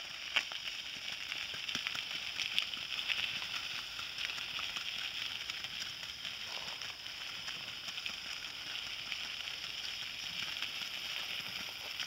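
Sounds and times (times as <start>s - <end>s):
cart wheels crunching on gravel: 0.0s - 12.0s
constant high hiss: 0.0s - 12.0s
hooves on gravel: 0.0s - 12.0s.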